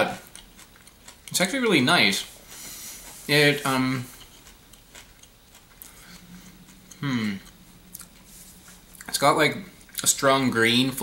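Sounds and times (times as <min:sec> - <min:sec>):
closed-mouth hum: 0:00.0 - 0:11.0
almond being chewed: 0:00.1 - 0:01.6, 0:03.0 - 0:09.2.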